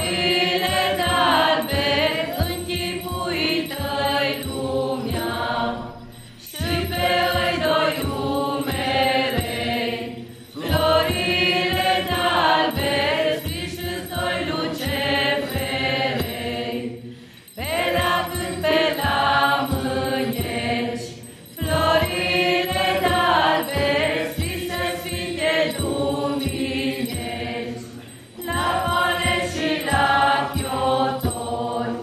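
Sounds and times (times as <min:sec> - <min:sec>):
mixed group singing: 0:00.0 - 0:32.0.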